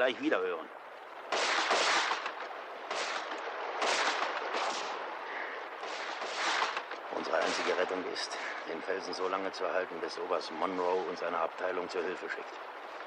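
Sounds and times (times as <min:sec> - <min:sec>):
musket gunshots with echo: 0:01.3 - 0:05.0, 0:05.8 - 0:07.9.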